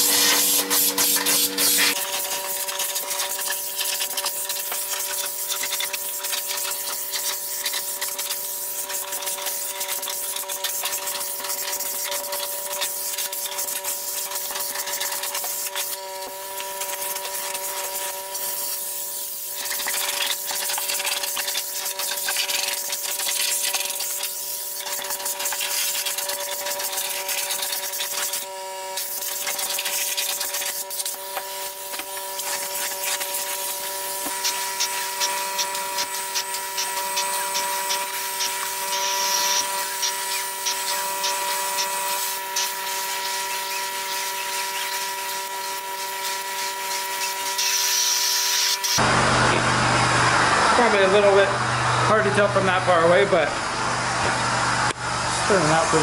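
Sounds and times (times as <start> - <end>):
vacuum whine: 0.0 - 10.0, 23.4 - 56.0
air and water rushing through hose: 0.0 - 49.1.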